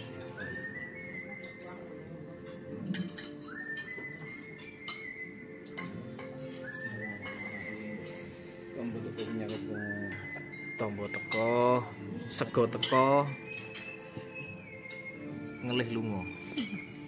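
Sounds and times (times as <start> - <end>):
cutlery and glassware clinking: 0.0 - 17.0
whistle-like background music: 0.0 - 17.0.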